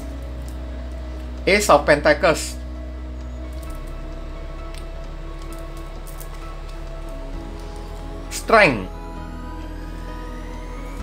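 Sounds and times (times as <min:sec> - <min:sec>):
soft music with held tones: 0:00.0 - 0:11.0.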